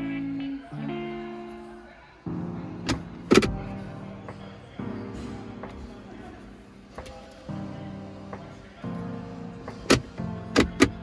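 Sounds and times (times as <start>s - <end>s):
background guitar music: 0.0s - 11.0s
plastic tray clacking: 2.9s - 3.6s, 9.8s - 11.0s.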